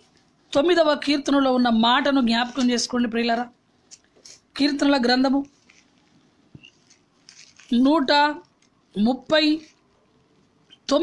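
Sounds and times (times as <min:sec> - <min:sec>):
soft rustles: 0:05.4 - 0:08.8.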